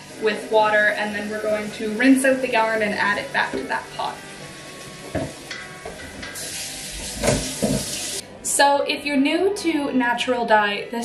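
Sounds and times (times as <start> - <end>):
tap water running into a pot: 0.0 - 8.2.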